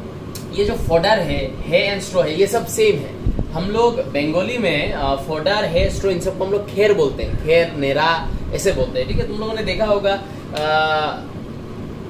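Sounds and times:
man saying aah: 10.5 - 11.3.

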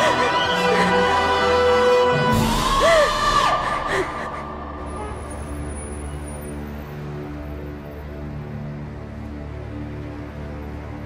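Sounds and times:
sad drama score held tones: 0.0 - 11.0.

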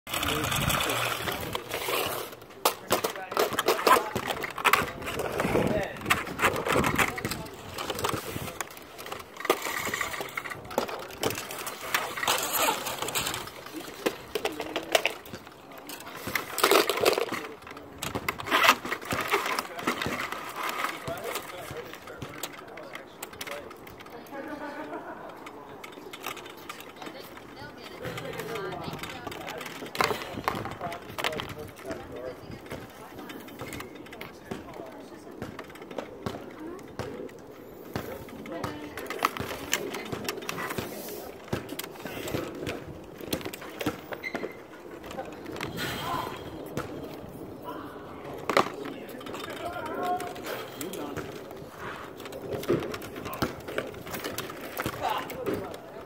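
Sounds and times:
voices talking: 0.1 - 56.0.

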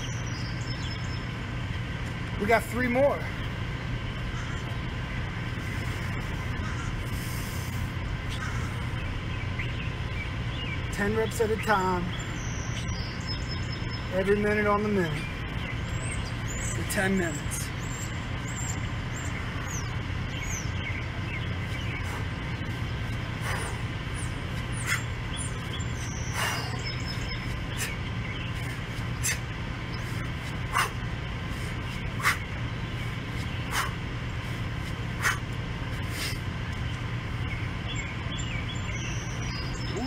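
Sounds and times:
birds chirping: 0.0 - 40.0
steady low hum: 0.0 - 40.0.

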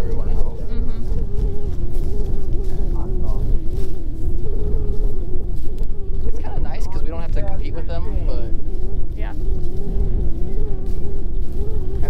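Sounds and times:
faintly wavering hum: 0.0 - 12.0
wind buffeting microphone: 0.0 - 12.0.

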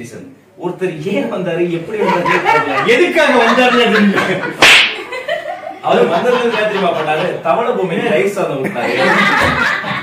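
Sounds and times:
hand slap: 4.6 - 5.1.

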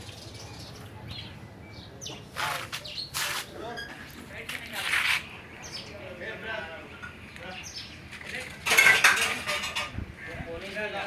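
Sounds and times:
hard objects clattering: 8.1 - 10.0.

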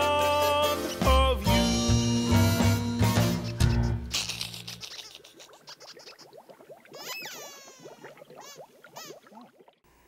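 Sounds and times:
cartoon bubble blips: 5.3 - 9.8.

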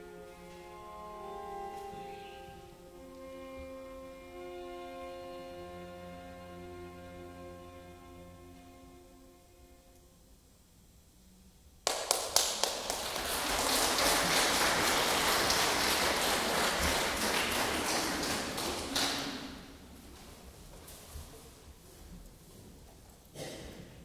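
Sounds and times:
audience applauding: 11.9 - 19.8.

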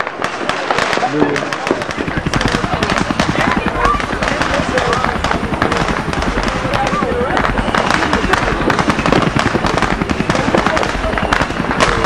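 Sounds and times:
firecrackers crackling and popping: 0.0 - 12.0.

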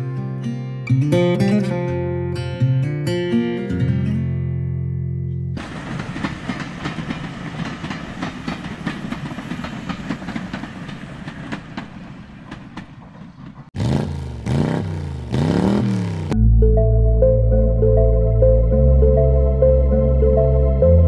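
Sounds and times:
train wheels clattering: 5.6 - 13.8.

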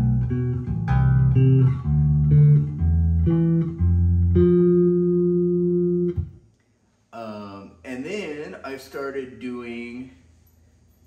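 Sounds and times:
electric bass plucked notes: 0.0 - 6.5.

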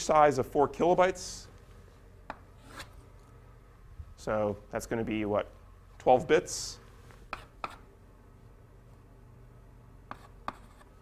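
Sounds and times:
chalk tapping on blackboard: 7.3 - 7.8, 10.1 - 10.9.

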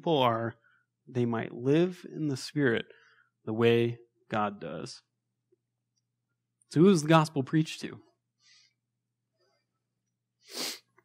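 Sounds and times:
sharp burst of breath: 10.4 - 10.9.

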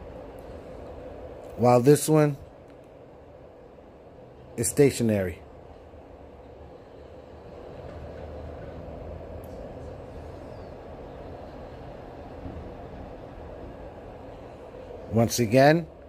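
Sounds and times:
room noise rumble and hum: 0.0 - 16.0.

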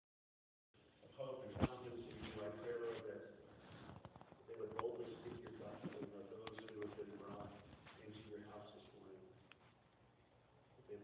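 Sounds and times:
man leading a prayer: 1.1 - 3.5, 4.5 - 9.4.

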